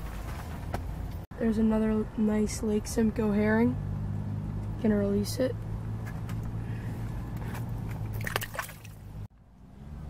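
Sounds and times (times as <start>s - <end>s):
water splashing and sloshing: 7.5s - 9.3s.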